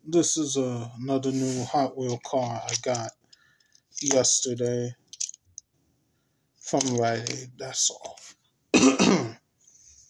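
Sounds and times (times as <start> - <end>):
person clearing throat: 8.8 - 9.4.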